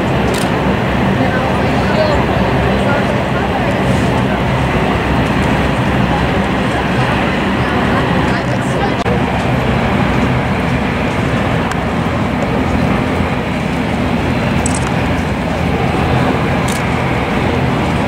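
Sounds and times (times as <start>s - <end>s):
murmur of voices: 0.0s - 18.0s
wind: 0.0s - 18.0s.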